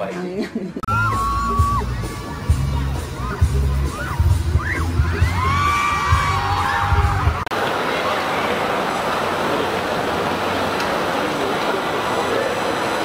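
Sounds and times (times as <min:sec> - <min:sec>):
pop music with heavy bass beat: 0:00.9 - 0:07.4
crowd hubbub: 0:00.9 - 0:13.0
fans screaming: 0:00.9 - 0:13.0.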